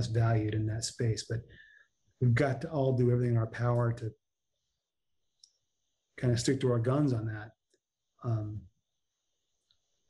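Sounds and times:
man speaking: 0:00.0 - 0:01.5, 0:02.2 - 0:04.1, 0:06.2 - 0:07.5, 0:08.2 - 0:08.6
faint high hiss: 0:08.2 - 0:08.6.

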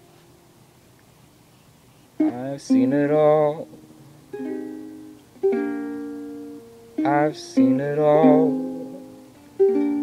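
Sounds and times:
ukulele strummed chords: 0:02.2 - 0:10.0.

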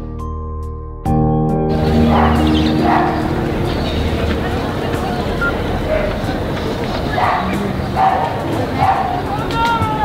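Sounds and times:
soft background music: 0:01.2 - 0:09.2
short calls: 0:01.7 - 0:09.5
distant indistinct voices: 0:01.7 - 0:10.0.

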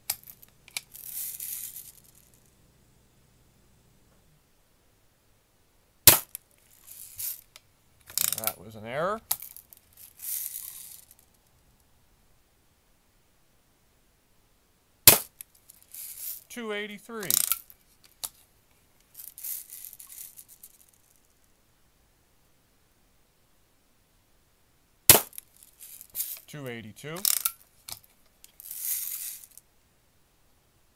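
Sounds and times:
soft rustle: 0:00.0 - 0:02.5, 0:06.3 - 0:08.4, 0:09.3 - 0:11.6, 0:15.4 - 0:16.5, 0:17.6 - 0:21.6, 0:25.3 - 0:26.5, 0:27.5 - 0:29.7
bb gun firing: 0:06.1 - 0:06.4, 0:15.1 - 0:15.3, 0:25.1 - 0:25.4.

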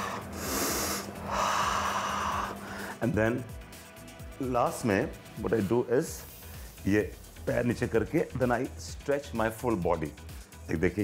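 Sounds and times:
man breathing deeply: 0:00.0 - 0:03.0.

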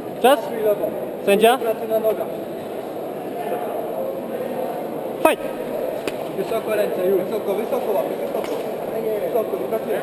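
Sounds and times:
spectators chattering: 0:00.0 - 0:10.0.

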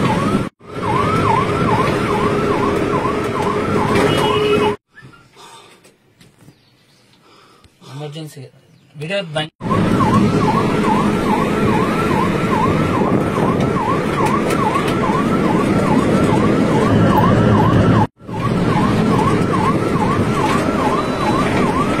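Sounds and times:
ambulance siren yelping: 0:00.0 - 0:04.8, 0:09.6 - 0:22.0
engine and road rumble: 0:00.0 - 0:22.0.

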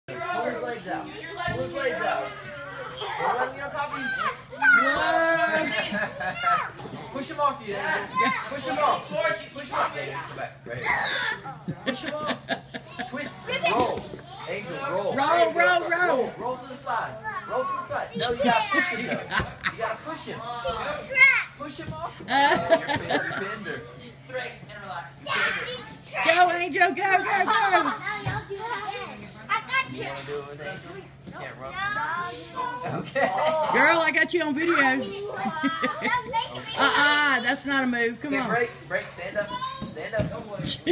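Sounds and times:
raised voices of children: 0:00.1 - 0:07.1, 0:10.7 - 0:11.6.

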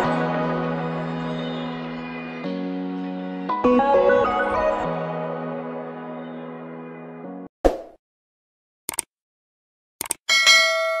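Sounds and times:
bright bell ding: 0:10.3 - 0:11.0.

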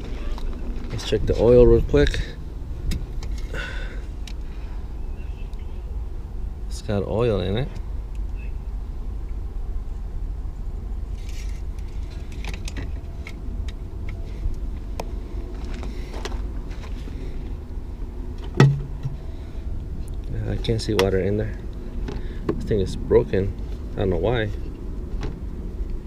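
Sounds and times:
steady low rumble: 0:00.0 - 0:26.0.

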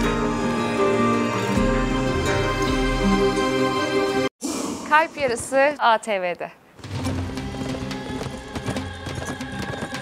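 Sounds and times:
background music held notes: 0:00.0 - 0:04.3
horses galloping hooves: 0:06.8 - 0:10.0.

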